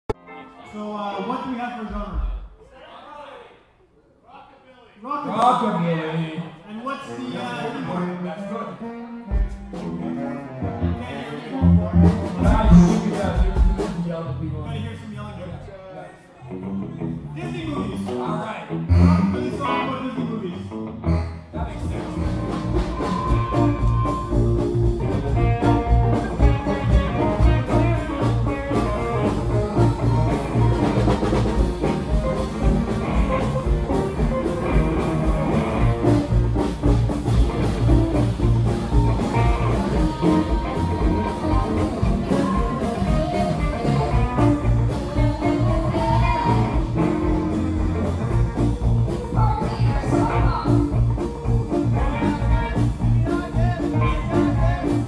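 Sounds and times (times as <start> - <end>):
rockabilly band playing: 8.7 - 14.8, 16.4 - 55.0
woman singing: 38.6 - 47.4, 48.8 - 52.8.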